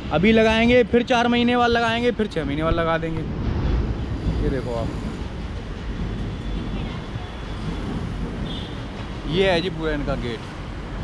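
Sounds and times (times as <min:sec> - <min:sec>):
road traffic rumble: 0:00.0 - 0:11.0
wind buffeting microphone: 0:01.6 - 0:09.8.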